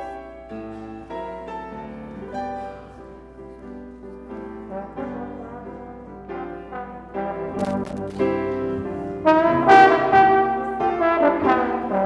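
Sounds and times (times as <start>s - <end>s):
grand piano accompaniment: 0.0s - 12.0s
slide trombone melody: 4.6s - 12.0s.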